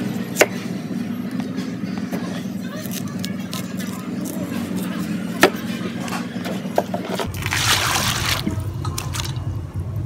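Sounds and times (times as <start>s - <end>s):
steady low hum: 4.0s - 10.0s.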